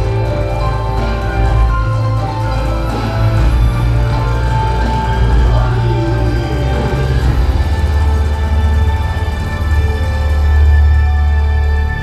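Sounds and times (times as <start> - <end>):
loud dance music with heavy bass: 0.0 - 12.0.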